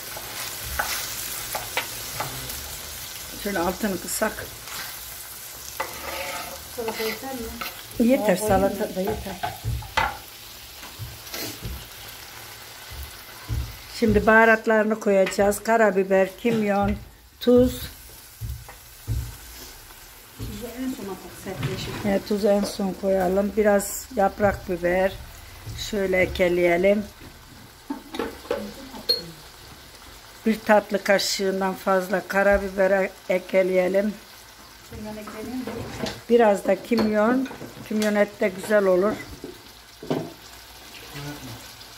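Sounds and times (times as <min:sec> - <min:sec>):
scrape in pan: 0:00.0 - 0:02.6, 0:04.3 - 0:07.9, 0:10.8 - 0:12.6, 0:18.7 - 0:20.1
meat sizzling in a pan: 0:00.0 - 0:41.9
soft knock: 0:18.4 - 0:19.4.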